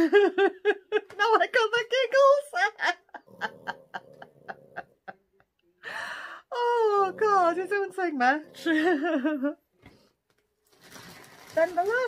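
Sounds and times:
woman laughing hard: 0.0s - 1.2s.

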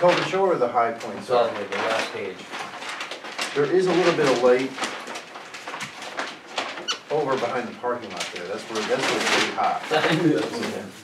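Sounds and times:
handling rustles and taps: 0.0s - 11.0s.

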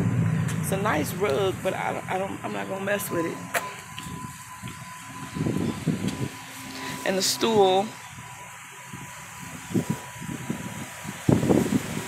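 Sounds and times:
low bumps: 0.0s - 6.4s
outdoor background noise: 0.0s - 12.0s.

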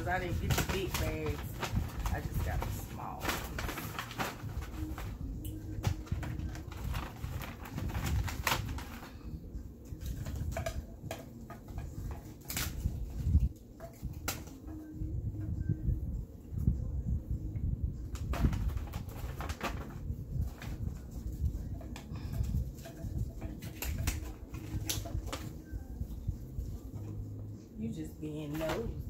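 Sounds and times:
paper bags rustling: 0.0s - 14.9s, 18.0s - 27.3s.

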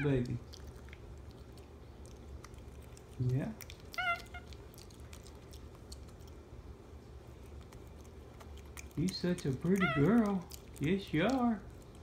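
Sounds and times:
chewing clicks: 0.0s - 6.5s, 7.3s - 12.0s
monkey squeak: 4.0s - 4.5s.

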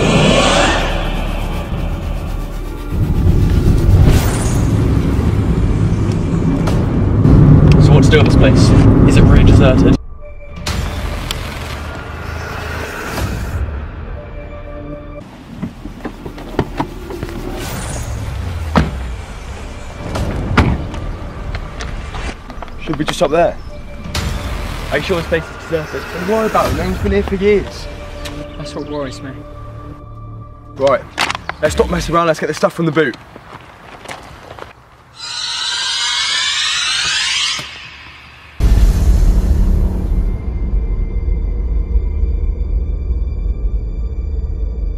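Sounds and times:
high noisy swell with gliding tones: 0.0s - 4.0s, 24.9s - 27.7s
deep boom: 0.0s - 10.0s, 38.6s - 43.7s
scary music: 0.0s - 15.3s, 16.9s - 31.0s, 35.1s - 44.9s.

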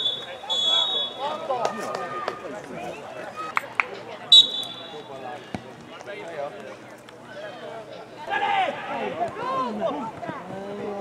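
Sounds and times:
referee's whistle blast: 0.0s - 1.4s, 4.3s - 5.1s
distant voices: 0.0s - 11.0s.

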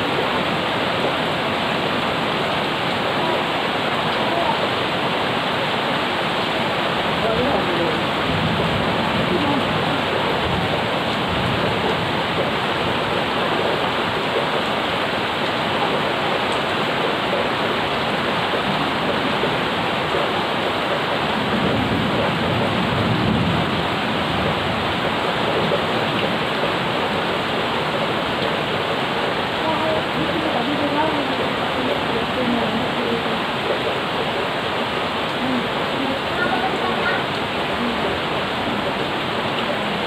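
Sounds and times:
rain on plants and paving: 0.0s - 40.0s.

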